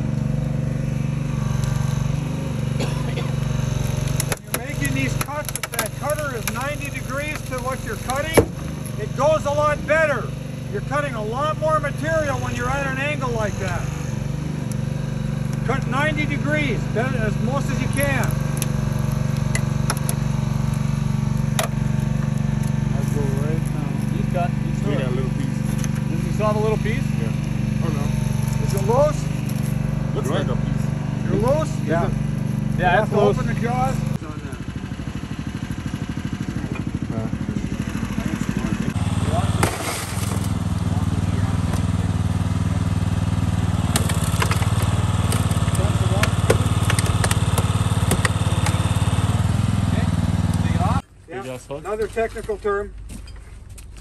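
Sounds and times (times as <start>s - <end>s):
small engine running: 0.0s - 54.0s.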